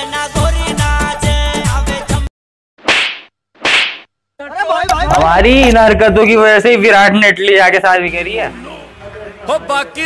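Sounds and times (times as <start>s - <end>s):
sharp slap hits: 2.8s - 4.1s.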